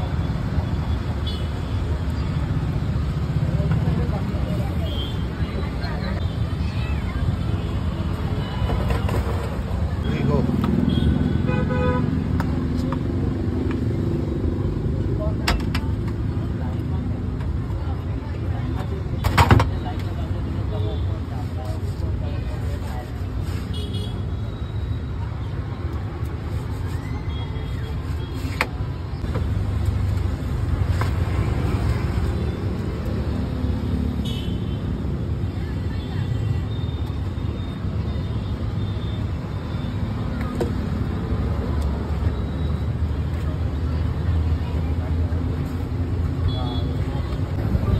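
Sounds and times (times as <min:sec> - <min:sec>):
road traffic: 0:00.0 - 0:47.9
vehicle horn honking: 0:10.9 - 0:12.0.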